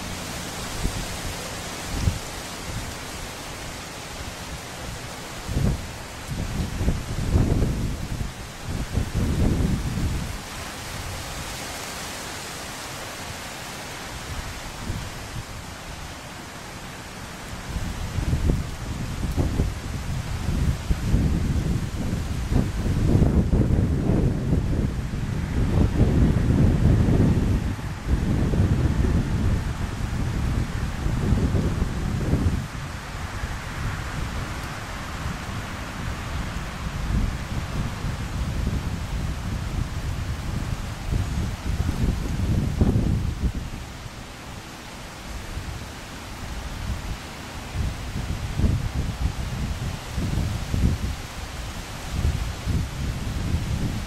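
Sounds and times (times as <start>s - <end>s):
wind buffeting microphone: 0.0s - 11.6s, 14.0s - 44.2s, 45.2s - 54.0s
steady background hiss: 0.0s - 54.0s.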